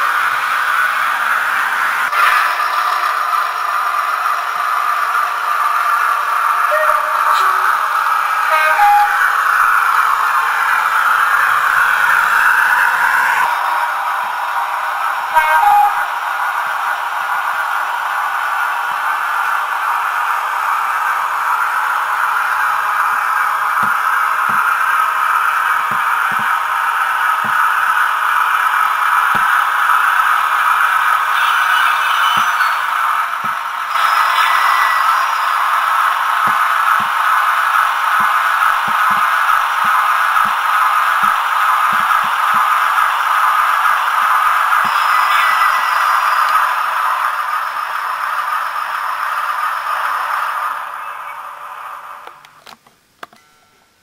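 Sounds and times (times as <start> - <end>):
model train wheels clicking: 0.0 - 13.5, 16.8 - 53.4
diesel engine through small speaker: 0.0 - 16.2, 19.7 - 52.5.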